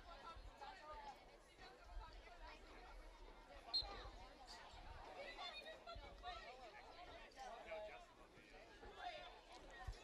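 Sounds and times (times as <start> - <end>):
chatter of spectators: 0.0 - 10.0.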